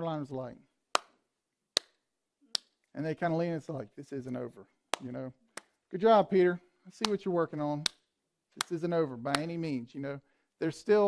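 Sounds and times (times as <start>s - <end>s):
man clapping hands: 7.0s - 8.0s, 8.6s - 9.5s.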